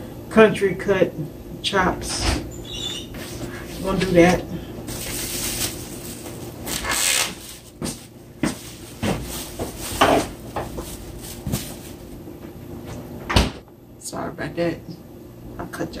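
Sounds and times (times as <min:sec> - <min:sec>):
plastic packaging crinkling: 0:04.9 - 0:12.2.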